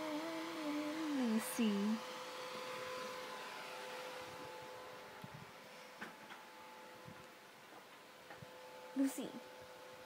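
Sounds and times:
thin steady hum: 0.0s - 10.0s.

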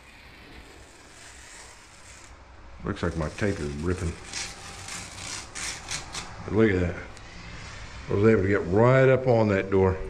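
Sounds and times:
tape and paper ripping: 0.0s - 6.4s.

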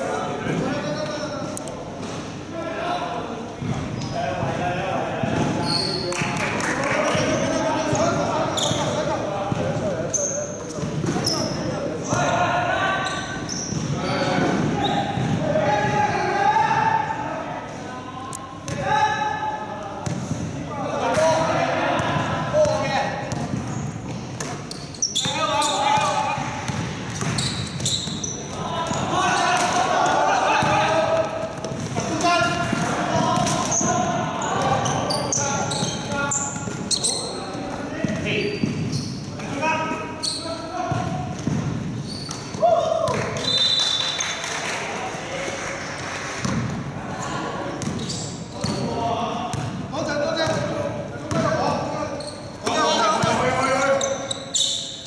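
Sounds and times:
sneakers squeaking: 0.0s - 2.5s, 3.5s - 4.6s, 5.2s - 16.9s, 18.4s - 44.5s, 46.4s - 55.0s
basketball bouncing on court: 7.1s - 9.9s, 10.7s - 12.4s, 13.5s - 16.1s, 20.0s - 21.4s, 22.0s - 29.9s, 30.5s - 39.3s, 40.8s - 43.6s, 46.4s - 46.8s, 47.8s - 51.9s
players calling out: 24.6s - 44.6s.

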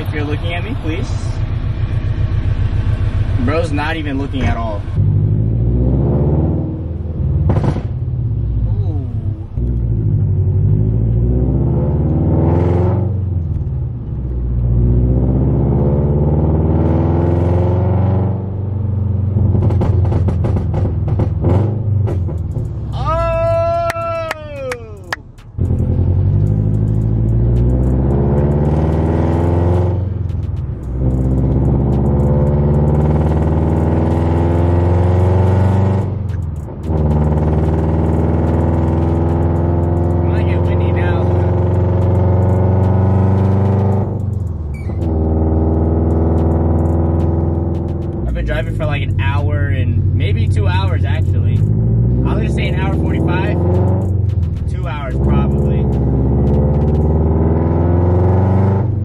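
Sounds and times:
car engine accelerating through gears: 0.0s - 23.0s, 24.6s - 59.0s
exhaust crackles and pops: 7.3s - 8.0s, 19.3s - 59.0s.

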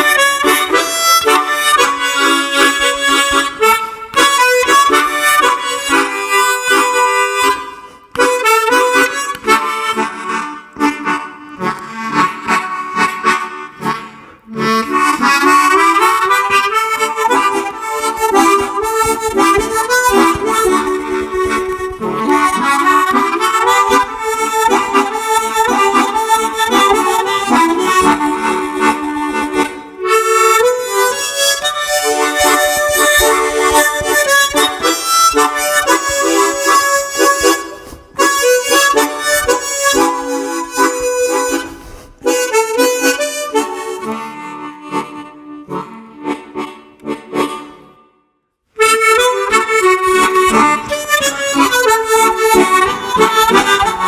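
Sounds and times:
tremolo harmonica melody: 0.0s - 54.0s.

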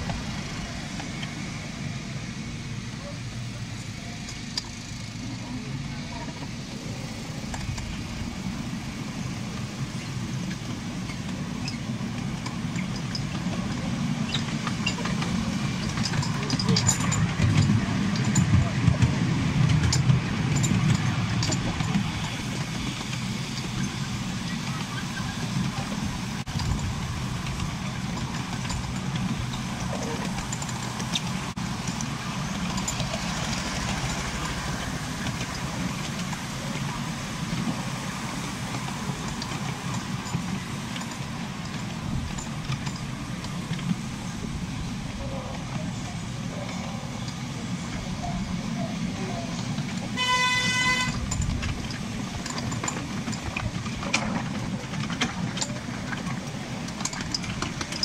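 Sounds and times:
locomotive engine running: 0.0s - 58.0s
train wheels rumbling on rails: 0.0s - 58.0s.

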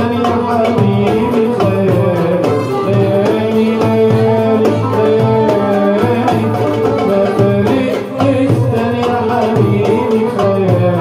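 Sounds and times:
frame drum: 0.0s - 11.0s
goblet drum rhythm: 0.0s - 11.0s
keyboard melody: 0.0s - 11.0s
oud: 0.0s - 11.0s
violin: 0.0s - 11.0s.

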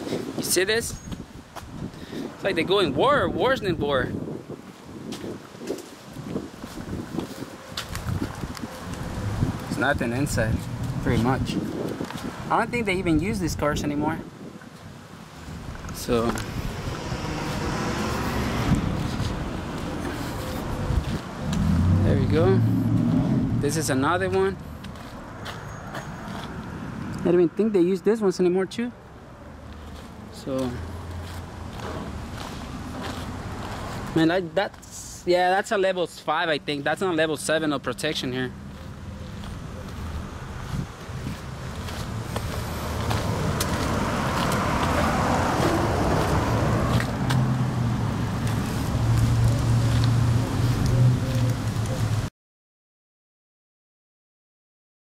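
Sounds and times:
outdoor background noise: 0.0s - 52.3s
passing car rushing: 15.4s - 27.6s, 38.5s - 52.2s.

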